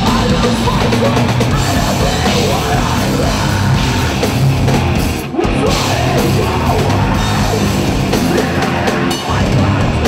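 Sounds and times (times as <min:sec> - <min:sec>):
distorted electric guitar: 0:00.0 - 0:10.0
drum kit: 0:00.0 - 0:10.0.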